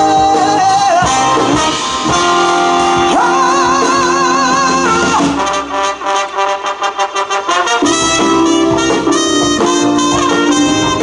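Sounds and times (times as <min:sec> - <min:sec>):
live band playing cumbia: 0:00.0 - 0:11.0
trumpet and trombone horn section: 0:00.0 - 0:11.0.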